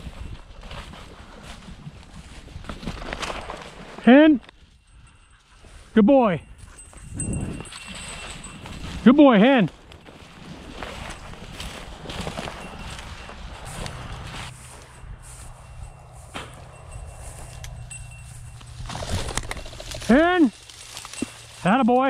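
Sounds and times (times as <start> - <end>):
footsteps through dry grass: 0.0 - 22.0.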